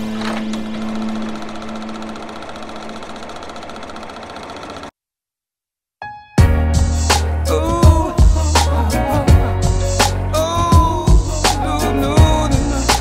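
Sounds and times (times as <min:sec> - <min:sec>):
machine-like whirring: 0:00.0 - 0:04.9.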